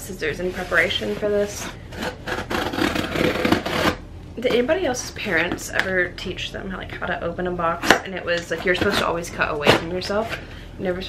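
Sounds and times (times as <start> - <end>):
scissor blade scraping cardboard: 1.0 - 4.0.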